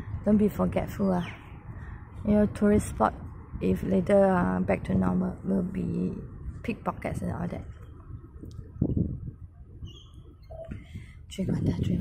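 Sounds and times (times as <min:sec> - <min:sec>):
wind rumble on microphone: 0:00.0 - 0:12.0
high bird chirp: 0:09.8 - 0:10.9.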